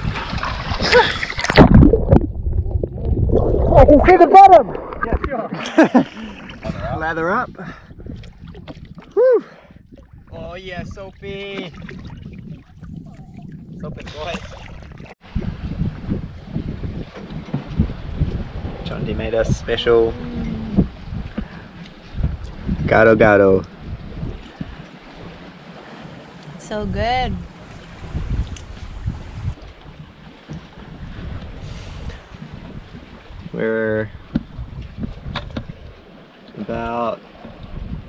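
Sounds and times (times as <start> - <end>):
wind buffeting microphone: 0.0 - 5.4, 6.5 - 36.8, 37.4 - 38.0
sea water splashing: 0.0 - 7.4, 8.1 - 38.0
muffled underwater rumble: 1.6 - 4.1, 12.0 - 21.6
swimmer crying out: 19.9 - 20.9.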